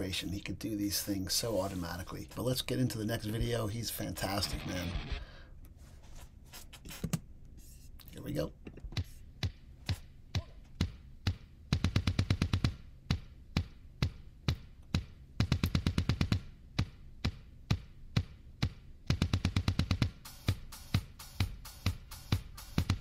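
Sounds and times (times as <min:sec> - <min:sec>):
drum kit groove: 0:08.9 - 0:23.0
fast bass drum runs: 0:10.8 - 0:16.9, 0:17.7 - 0:23.0.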